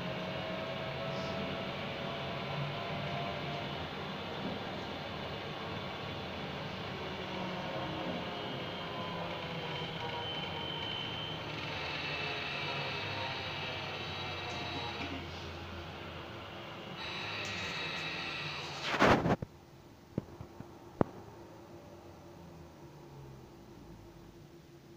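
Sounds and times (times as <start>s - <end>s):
high whine: 0.0s - 19.5s.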